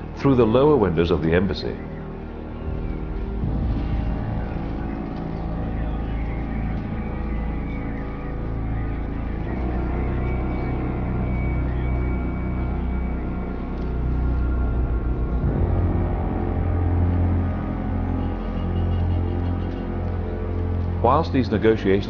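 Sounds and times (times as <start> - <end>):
dark droning music: 0.0 - 22.0
steady low rumble: 0.0 - 22.0.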